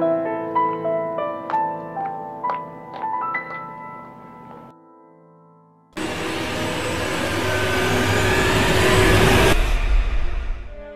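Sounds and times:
low rumble: 6.0s - 10.9s
rushing whoosh: 6.0s - 10.9s.

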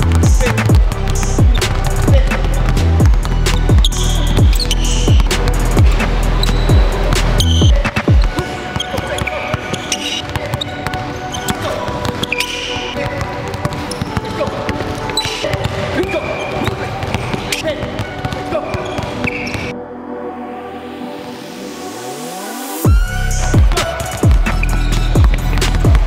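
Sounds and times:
music with heavy bass beat: 0.0s - 8.4s, 22.8s - 26.0s
basketballs bouncing on hardwood floor: 0.0s - 19.7s, 23.6s - 26.0s.

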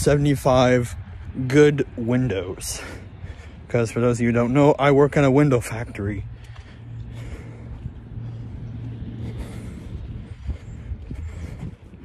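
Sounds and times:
motor vehicle engine droning: 0.0s - 12.0s.

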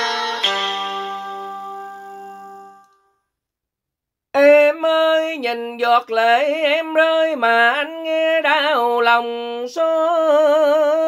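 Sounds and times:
held instrumental note: 0.0s - 3.0s.

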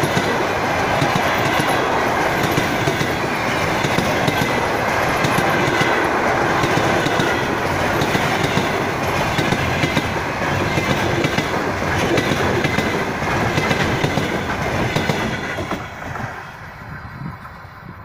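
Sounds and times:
train wheels clattering over rail joints: 0.0s - 16.3s.

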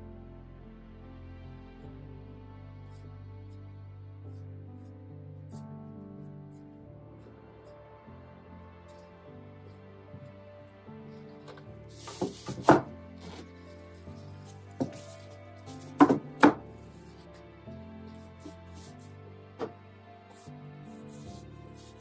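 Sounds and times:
background music: 0.0s - 22.0s
wooden panels knocking on workbench: 12.2s - 12.9s, 16.0s - 16.6s.

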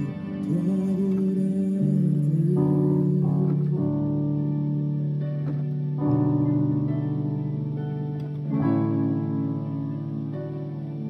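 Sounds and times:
digital piano chords: 0.0s - 11.0s.

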